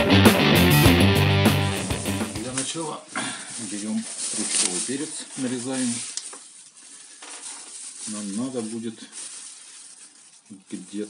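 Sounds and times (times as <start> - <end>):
rock music: 0.0 - 2.6
faint steady hiss: 2.4 - 11.0.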